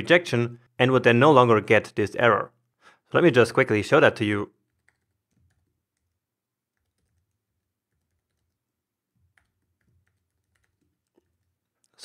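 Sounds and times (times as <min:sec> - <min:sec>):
faint keyboard typing: 0:04.5 - 0:12.0.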